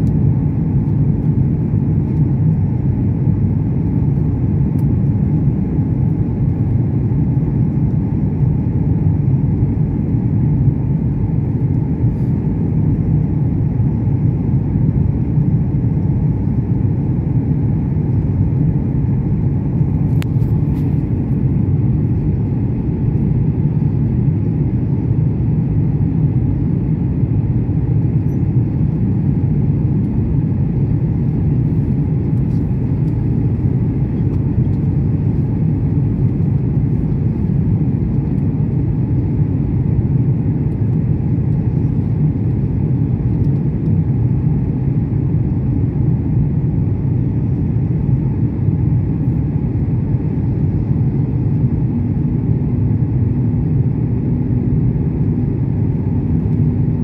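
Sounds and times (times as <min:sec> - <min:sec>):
airliner cabin rumble: 0:00.0 - 0:57.0.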